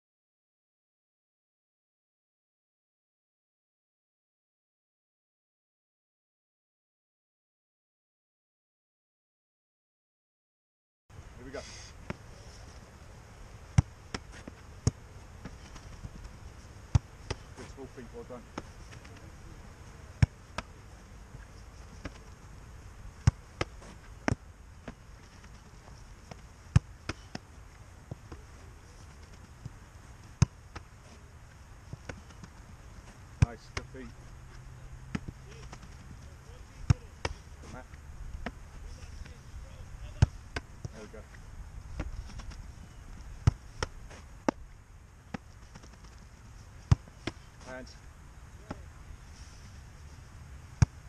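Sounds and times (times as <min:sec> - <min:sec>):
low outdoor rumble: 0:11.1 - 0:51.0.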